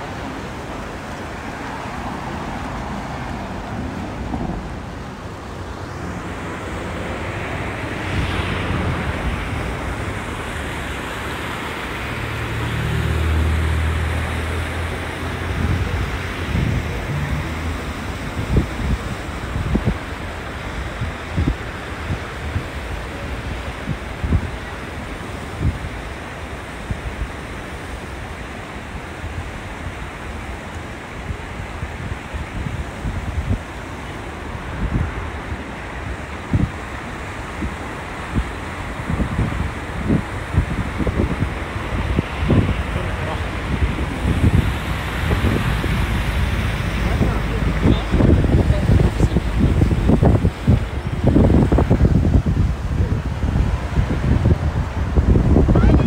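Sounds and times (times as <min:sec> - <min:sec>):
passing vehicle engine hum: 0:00.0 - 0:23.4, 0:31.7 - 0:56.0
river running over gravel: 0:00.0 - 0:56.0
wind buffeting microphone: 0:00.0 - 0:56.0.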